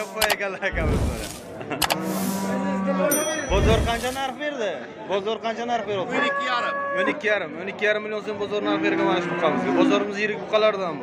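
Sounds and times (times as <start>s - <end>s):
sharp click sound effects: 0.2s - 2.0s.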